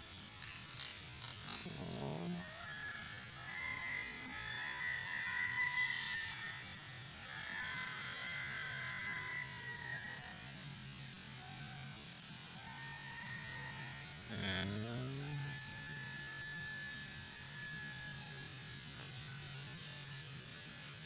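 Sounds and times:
high-pitched animal trilling: 1.4 - 2.5, 14.3 - 15.7
faint low hum: 1.5 - 2.8, 12.5 - 21.0.

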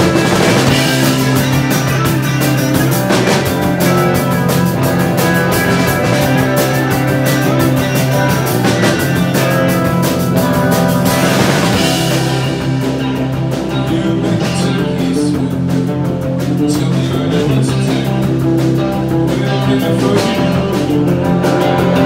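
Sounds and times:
drum kit steady beat: 0.0 - 22.0
electric guitars and bass: 0.0 - 22.0.

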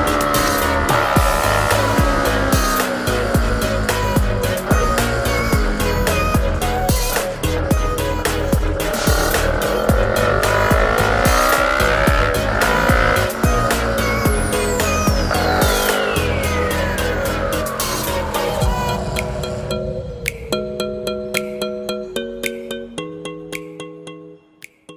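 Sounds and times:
motorcycle engine accelerating: 0.0 - 19.7
music with steady beat: 0.0 - 24.9.

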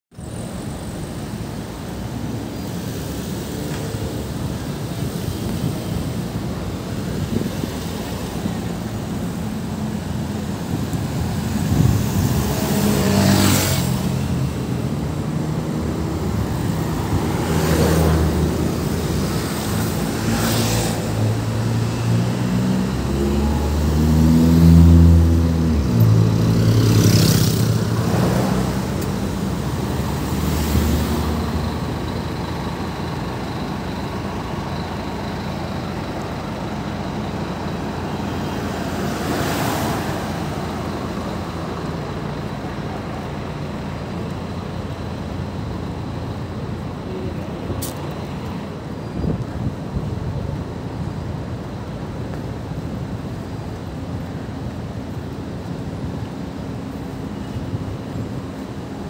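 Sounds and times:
traffic hum: 0.1 - 59.0
bus engine passing: 0.2 - 59.0
cars driving past: 0.2 - 59.0.

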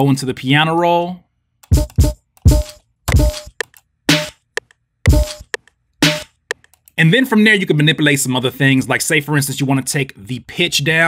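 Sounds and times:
sharp drum clicks: 1.7 - 6.7.

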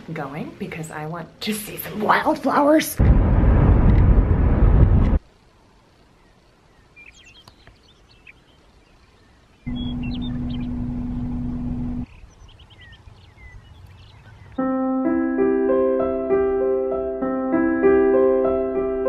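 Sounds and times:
steady rumble with low hum: 3.0 - 9.0, 9.6 - 13.8
small birds chirping: 6.0 - 14.6
car road noise: 9.7 - 12.1.

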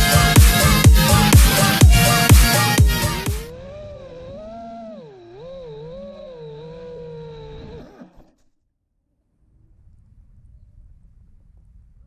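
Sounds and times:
quadcopter motors and propellers: 0.0 - 8.6.

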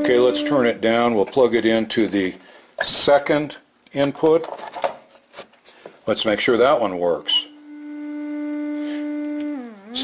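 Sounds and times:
test tone through amplifier: 0.0 - 0.8, 7.4 - 10.0.

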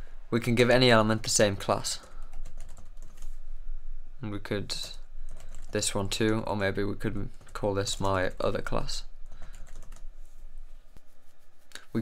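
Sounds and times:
computer keyboard typing: 2.0 - 3.3, 4.8 - 5.8, 9.2 - 10.1.

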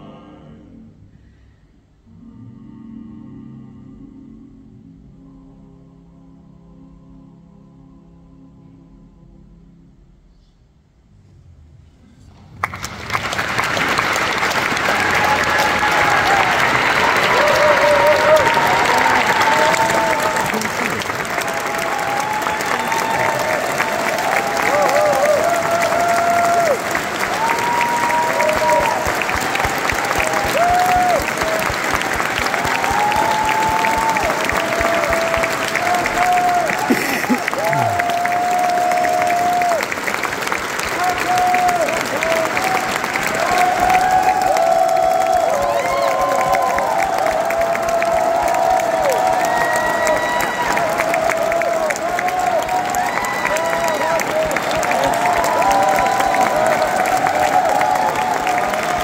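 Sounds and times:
audience applauding: 12.3 - 59.0
whoops and calls: 43.4 - 54.1.

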